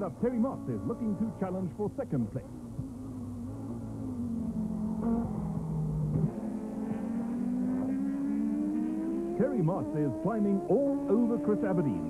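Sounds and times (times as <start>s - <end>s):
race car accelerating: 0.0s - 12.0s
racing car engine high pitch: 0.0s - 12.0s.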